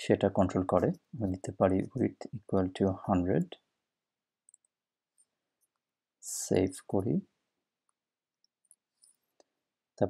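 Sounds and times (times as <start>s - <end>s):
man speaking: 0.0s - 3.6s, 6.2s - 7.3s.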